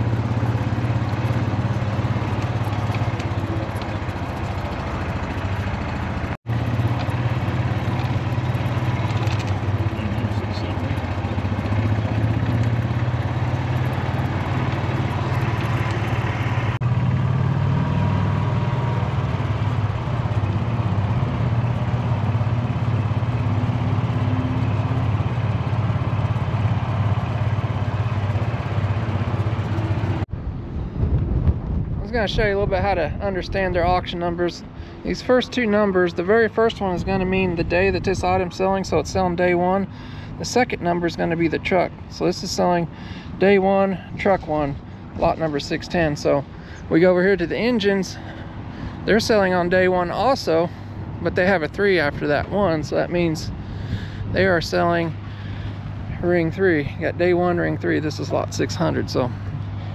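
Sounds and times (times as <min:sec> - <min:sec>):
vehicle engine droning: 0:00.0 - 0:59.9.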